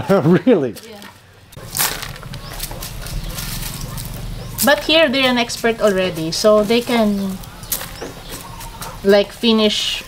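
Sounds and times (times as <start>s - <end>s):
coffee beans rustling and clicking: 0.8s - 4.9s, 5.5s - 8.7s
low rumble: 1.6s - 8.4s.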